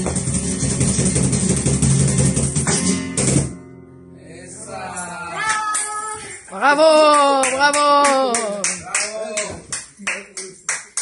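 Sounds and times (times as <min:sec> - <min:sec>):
cajon percussive strikes: 0:00.0 - 0:03.7
flamenco guitar: 0:00.0 - 0:09.8.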